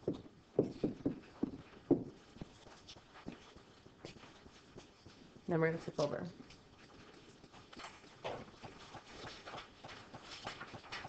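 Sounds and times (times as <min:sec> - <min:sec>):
faint taps and knocks: 0:00.0 - 0:05.3.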